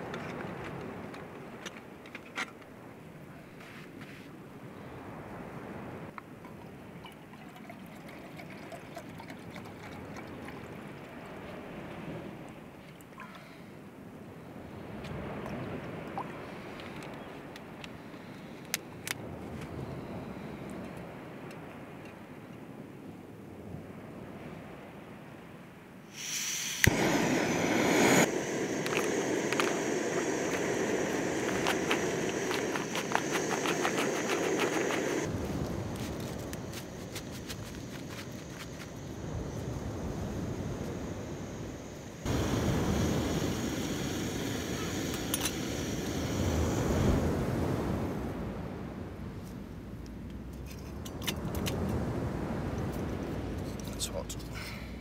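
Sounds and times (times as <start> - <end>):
camping stove burner hissing: 7.6 - 12.1, 26.1 - 48.6.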